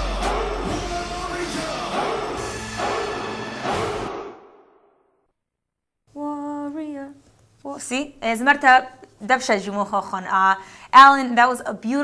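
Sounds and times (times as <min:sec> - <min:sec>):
rap backing music: 0:00.0 - 0:04.1.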